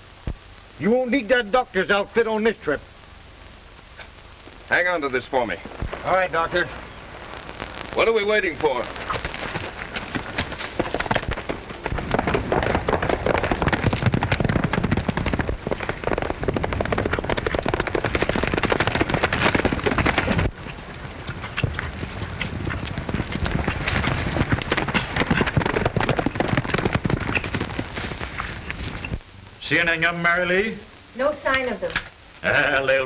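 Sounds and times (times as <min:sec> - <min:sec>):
horses galloping: 0:07.4 - 0:29.2.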